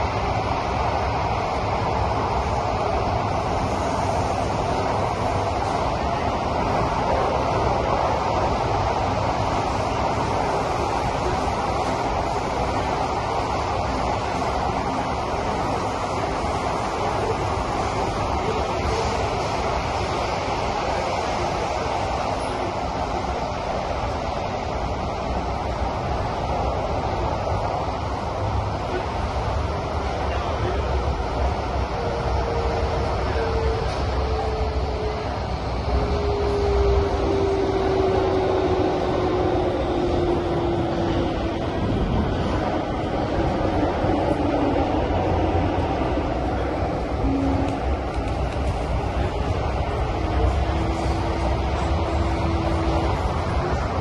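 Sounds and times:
train running rumble: 0.0 - 54.0.

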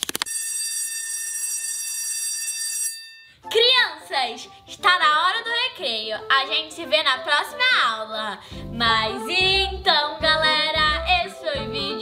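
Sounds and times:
bell ringing: 0.3 - 3.5.

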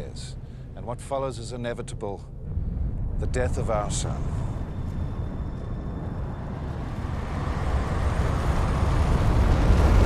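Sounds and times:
deep rumbling whoosh: 2.3 - 10.0.

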